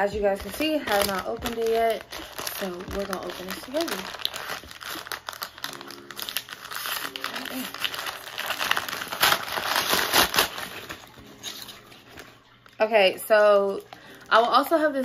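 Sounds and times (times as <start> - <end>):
packaging crinkling and tearing: 0.0 - 14.6.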